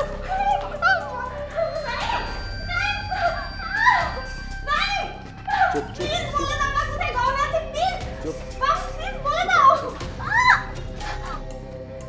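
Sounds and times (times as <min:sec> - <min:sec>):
background music with held note: 0:00.0 - 0:12.0.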